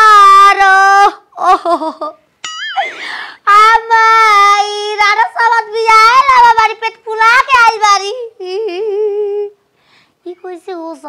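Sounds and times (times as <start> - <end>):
woman wailing: 2.5 - 3.2.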